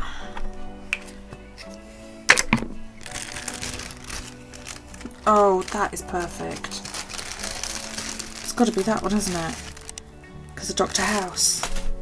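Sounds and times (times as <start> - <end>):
soft background music: 0.0 - 12.0
plastic zip bag rustling: 3.0 - 12.0.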